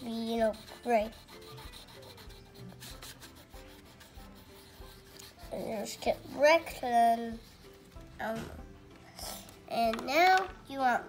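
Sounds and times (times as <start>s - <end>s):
crayon scratching on paper: 0.0s - 8.1s.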